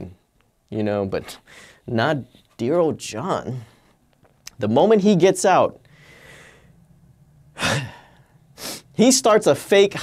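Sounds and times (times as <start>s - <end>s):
man sighing: 7.5s - 8.8s.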